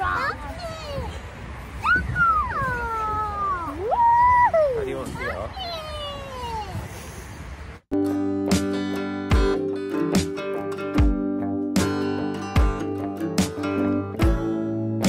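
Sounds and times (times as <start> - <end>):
guitar music: 7.9 - 15.0.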